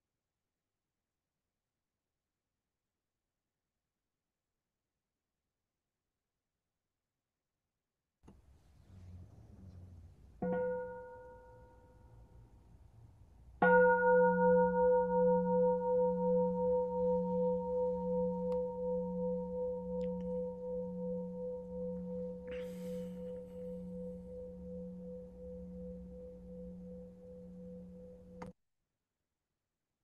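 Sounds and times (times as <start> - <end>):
singing bowl ringing: 10.4 - 12.1, 13.6 - 28.4.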